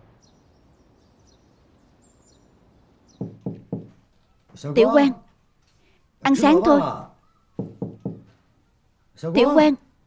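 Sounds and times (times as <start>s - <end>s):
knocks on wooden door: 3.2s - 4.0s, 7.6s - 8.4s.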